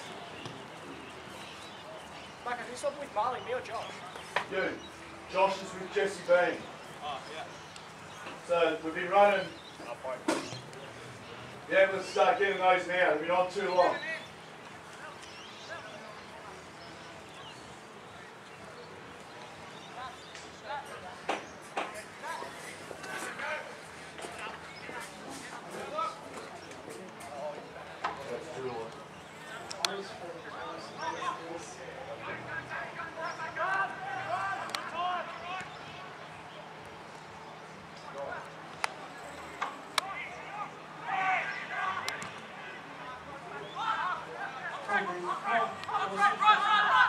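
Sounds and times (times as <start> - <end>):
distant voices calling out: 0.0 - 47.0.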